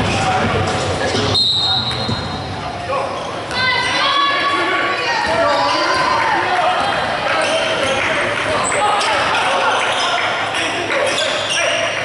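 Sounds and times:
voices echoing in gym: 0.0 - 12.0.

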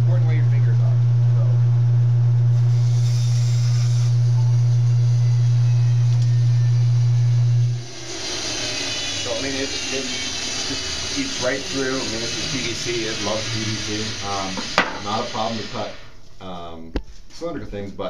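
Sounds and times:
bandsaw motor hum: 0.0 - 16.3
saw blade cutting plastic pipe: 2.6 - 4.5, 7.8 - 16.0.

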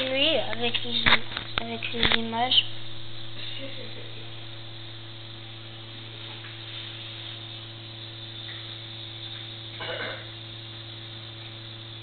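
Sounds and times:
constant hiss: 0.0 - 12.0
electrical hum: 0.0 - 12.0.

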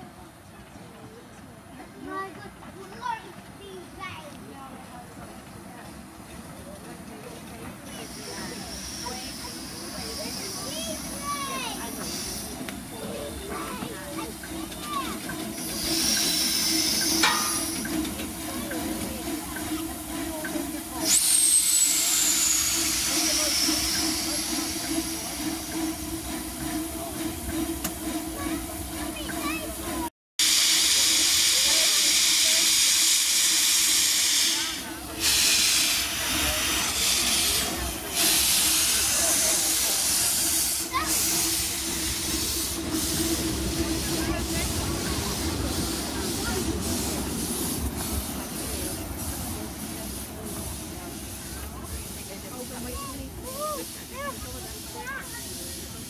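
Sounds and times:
steam locomotive hissing: 0.7 - 56.0
rush of escaping steam: 6.6 - 56.0.

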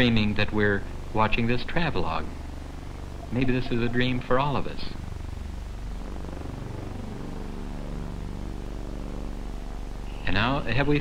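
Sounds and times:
narration: 0.0 - 5.8, 10.1 - 11.0
steady low hum: 0.0 - 11.0
sustained soundtrack tones: 1.2 - 11.0.

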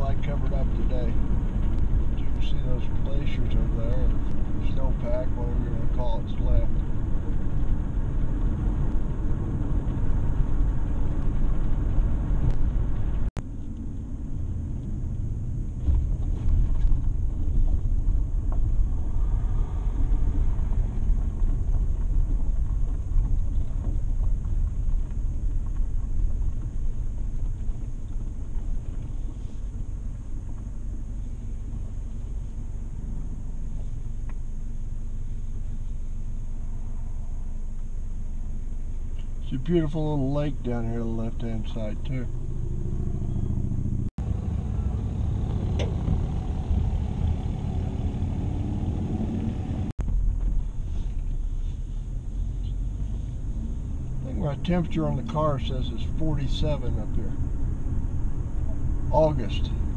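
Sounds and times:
car engine and road rumble: 0.0 - 59.9.

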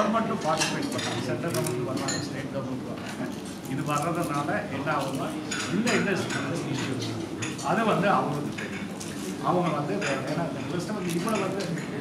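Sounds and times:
dishes and cutlery clinking: 0.0 - 2.4, 5.4 - 12.0.

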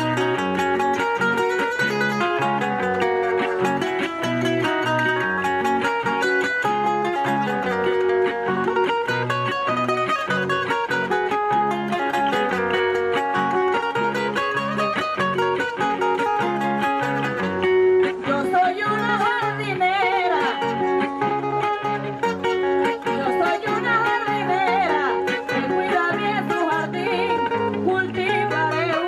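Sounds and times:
acoustic guitar plucked melody: 0.0 - 29.0
woman singing: 18.0 - 22.1, 22.8 - 29.0.

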